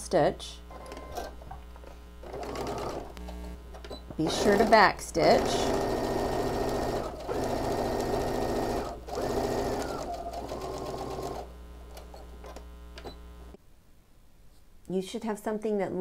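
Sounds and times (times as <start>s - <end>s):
steady hum: 0.0s - 13.6s
sewing machine stitching: 2.2s - 3.1s, 4.2s - 12.1s.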